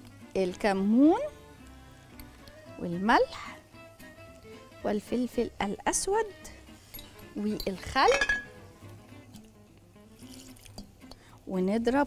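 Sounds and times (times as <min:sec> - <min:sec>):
quiet background music: 0:00.0 - 0:12.0
liquid pouring and dripping: 0:10.1 - 0:11.1.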